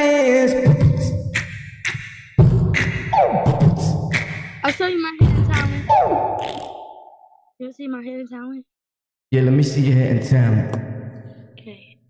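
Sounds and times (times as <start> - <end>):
hip-hop beat with heavy bass: 0.0 - 6.8.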